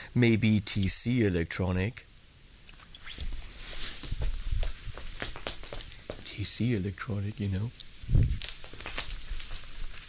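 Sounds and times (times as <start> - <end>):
clothing rustle: 2.9 - 6.2, 8.1 - 10.0
footsteps: 3.0 - 6.4, 8.1 - 10.0.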